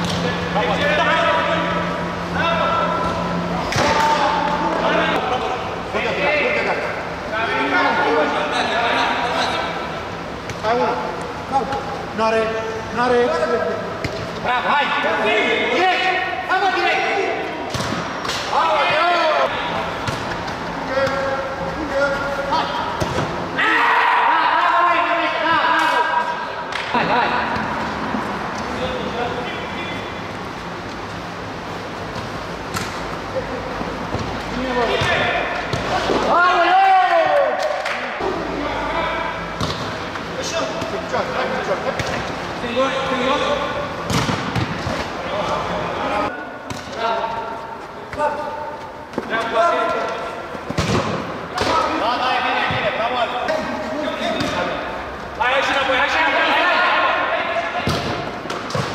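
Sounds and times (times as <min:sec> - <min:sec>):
players' voices: 0:00.0 - 0:58.9
football kick thuds: 0:50.7 - 0:51.8.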